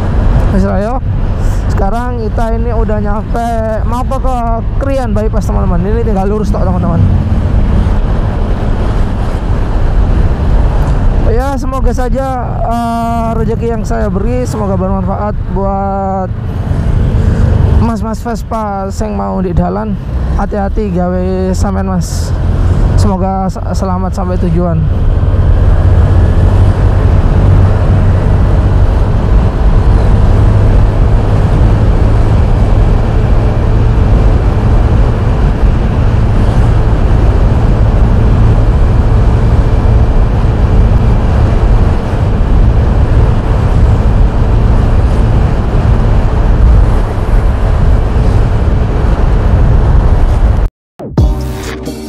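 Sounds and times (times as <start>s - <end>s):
motorcycle engine: 0.0s - 11.6s, 21.2s - 52.0s
wind buffeting microphone: 0.0s - 15.6s, 24.8s - 50.7s
road noise: 0.0s - 52.0s.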